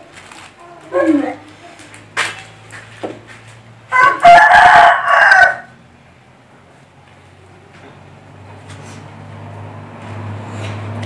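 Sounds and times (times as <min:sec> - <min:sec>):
rooster crowing: 0:03.9 - 0:05.8.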